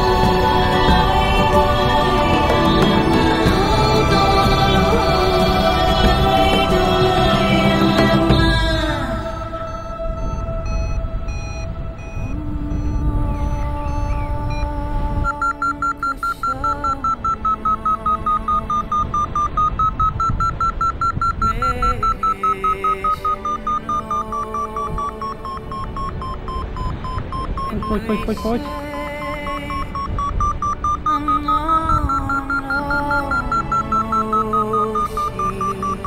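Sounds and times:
background music: 0.0 - 36.0
variometer beeping: 6.4 - 36.0
wind rumbling on microphone: 8.4 - 15.4.

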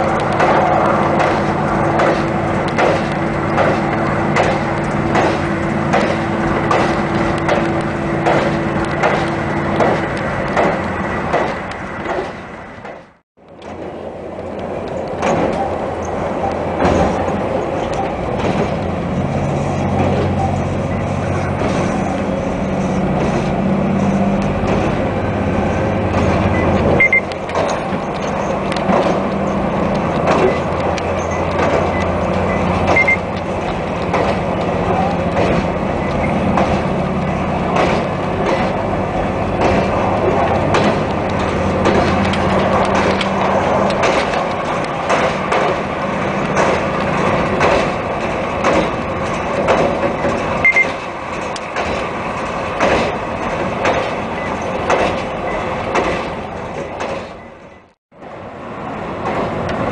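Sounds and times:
train wheels clacking over rail joints: 0.0 - 58.0, 58.9 - 59.9
diesel engine drone: 0.0 - 59.9.

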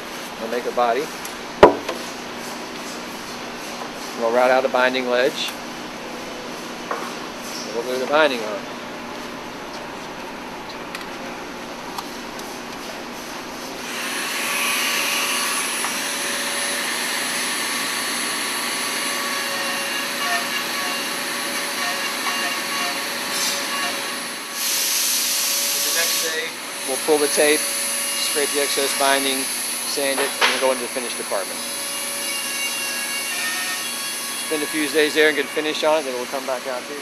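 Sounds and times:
workshop hum: 0.0 - 37.0.

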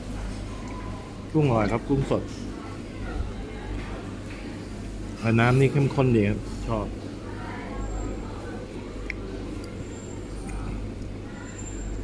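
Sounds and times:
faint voices: 0.0 - 12.0
low rumble of busy room: 0.0 - 12.0.

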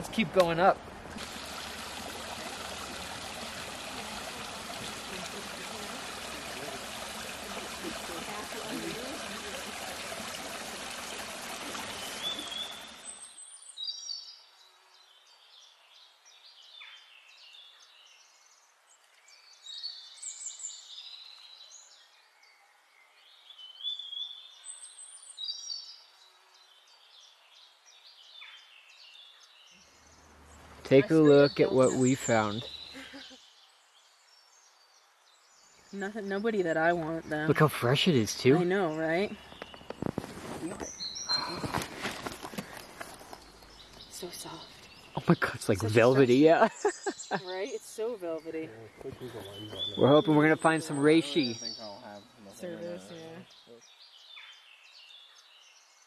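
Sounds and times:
mountain stream flowing: 0.0 - 13.4, 30.0 - 33.3, 36.6 - 48.0
birds chirping: 0.0 - 56.0.

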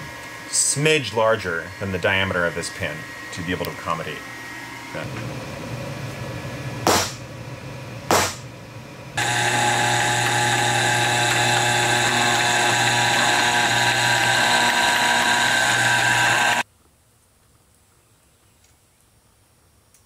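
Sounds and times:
hammer striking centre punch: 6.9 - 7.2, 8.1 - 8.4
drill press drilling metal: 9.2 - 16.6.

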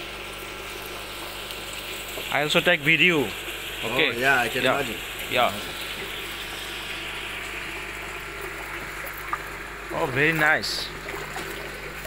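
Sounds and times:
water pouring into a fish tank: 0.0 - 12.0.

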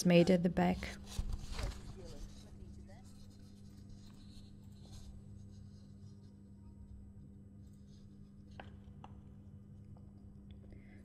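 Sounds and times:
steady low hum: 0.0 - 11.0
magazine paper rustling: 0.7 - 5.1.

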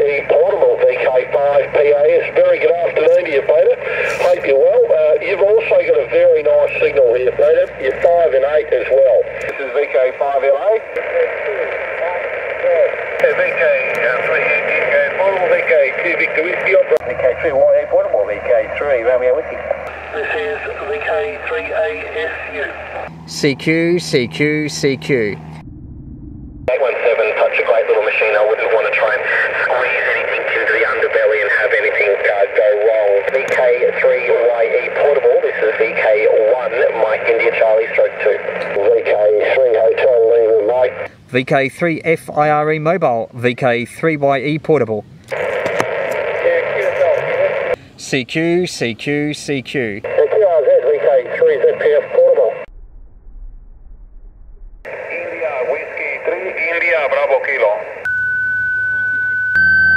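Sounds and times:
faint garbled radio voices: 0.0 - 23.1, 26.7 - 41.1, 45.3 - 48.2, 49.0 - 52.7, 54.9 - 58.1
radio band hiss: 0.0 - 25.5, 26.7 - 52.7, 54.9 - 58.1
faint steady hum: 0.0 - 53.1.

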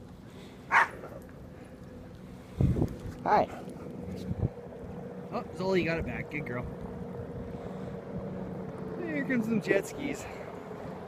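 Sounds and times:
dog barking: 0.7 - 1.1.

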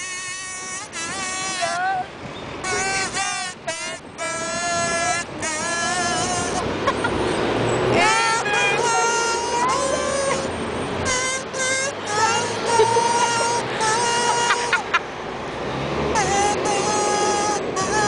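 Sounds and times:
kazoo playing a tune: 0.0 - 7.2, 7.9 - 15.1, 16.1 - 18.0.

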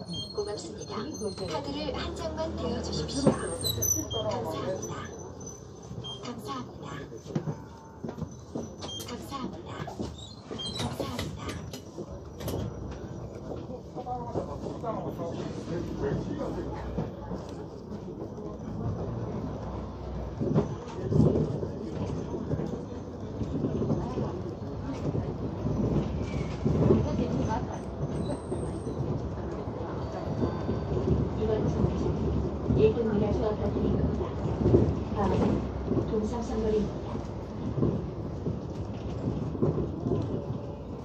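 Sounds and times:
bus engine drone: 0.1 - 10.1
bus body rattle: 8.2 - 29.9.

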